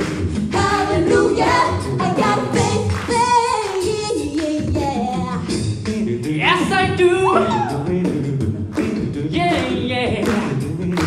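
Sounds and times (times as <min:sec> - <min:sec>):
a cappella group singing: 0:00.0 - 0:11.0.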